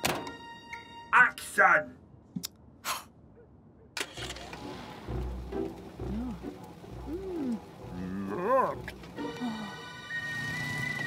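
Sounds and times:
low rumble: 0:04.4 - 0:09.0.

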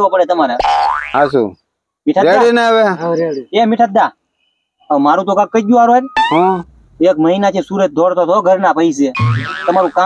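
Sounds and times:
cartoon boing glide: 0:06.2 - 0:06.7, 0:09.2 - 0:10.0.

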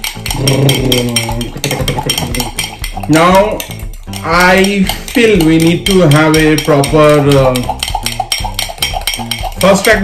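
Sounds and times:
fork ticking against glass: 0:00.0 - 0:10.0.

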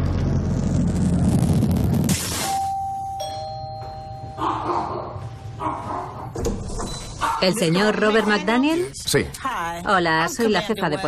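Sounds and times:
two-note doorbell chime: 0:02.6 - 0:04.7.

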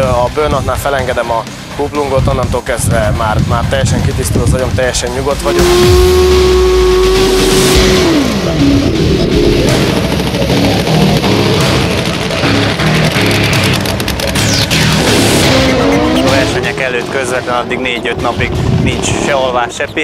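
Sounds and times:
music playing: 0:00.0 - 0:20.0
motorcycle engine revving: 0:04.6 - 0:19.8.

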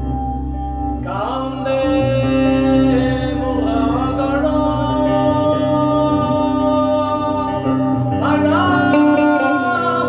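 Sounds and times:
guitar: 0:00.0 - 0:10.0
man singing: 0:01.0 - 0:10.0.

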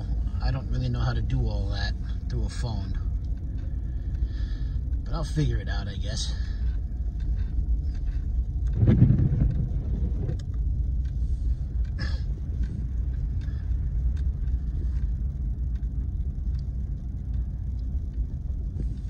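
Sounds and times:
engine and tyre rumble: 0:00.0 - 0:19.0
low thump: 0:08.7 - 0:10.4.

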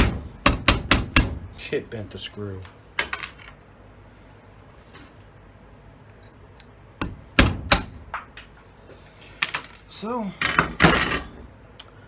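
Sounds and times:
hammer striking metal: 0:00.0 - 0:01.4, 0:07.0 - 0:08.1.

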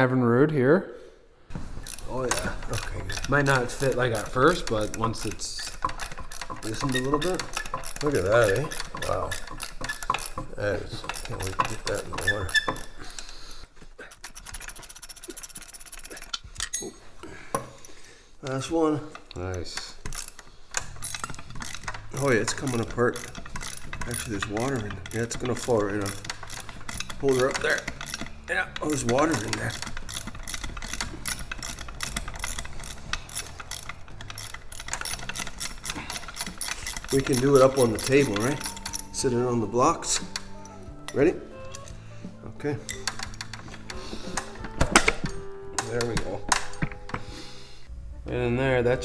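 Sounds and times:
hand ratchet clicking: 0:01.6 - 0:47.6.

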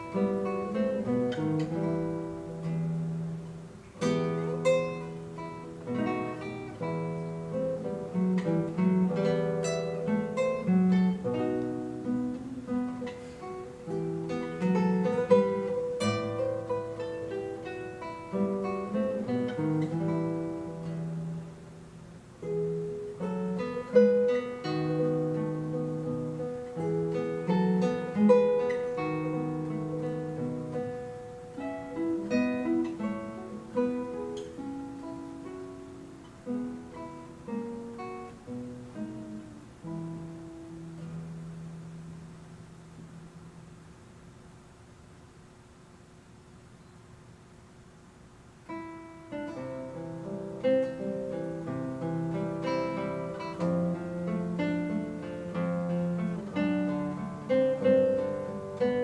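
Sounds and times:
fingerstyle classical guitar: 0:00.0 - 0:59.0.

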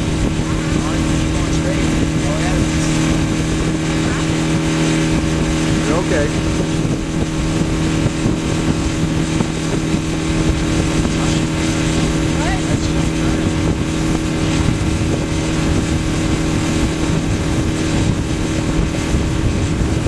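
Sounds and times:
outboard motor humming: 0:00.0 - 0:20.0
wind and water rushing past hull: 0:00.0 - 0:20.0.

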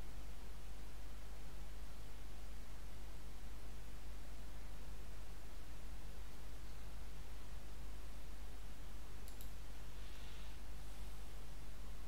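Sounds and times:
steady low hum: 0:00.0 - 0:12.0
computer mouse clicks: 0:09.2 - 0:09.6.

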